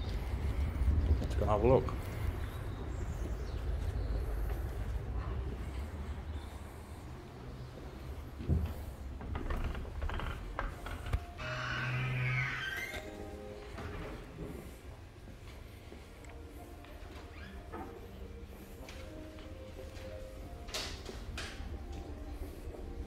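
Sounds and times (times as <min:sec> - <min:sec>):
faint music with steady tones: 0:00.0 - 0:23.0
heavy wooden doors opening: 0:07.6 - 0:15.2.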